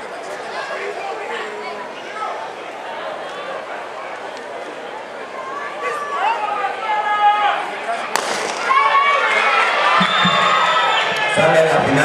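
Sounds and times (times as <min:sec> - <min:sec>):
spectators shouting and cheering: 0:00.0 - 0:12.0
starting pistol crack: 0:08.1 - 0:08.8.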